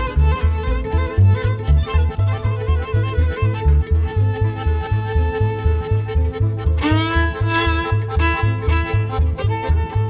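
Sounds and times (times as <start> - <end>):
folk band music: 0.0 - 10.0
solo violin: 0.0 - 10.0
steady bass beat: 0.0 - 10.0.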